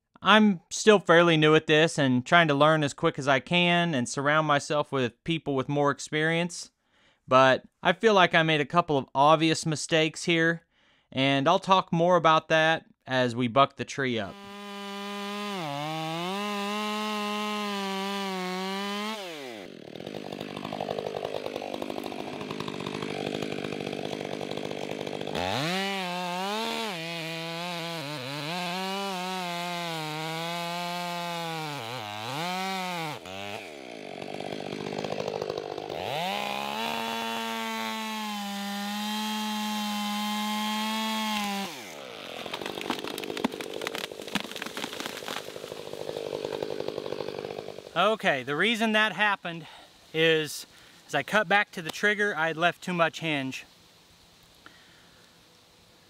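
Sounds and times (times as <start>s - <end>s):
tree falling: 14.3s - 28.0s, 32.2s - 48.0s
chainsaw revving under load: 14.3s - 48.0s
tree trunk cracking: 14.4s - 48.0s.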